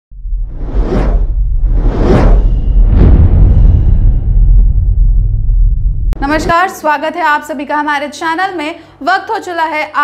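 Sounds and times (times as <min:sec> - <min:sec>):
deep rumble: 0:00.1 - 0:06.6
whoosh sound effect: 0:00.4 - 0:04.7.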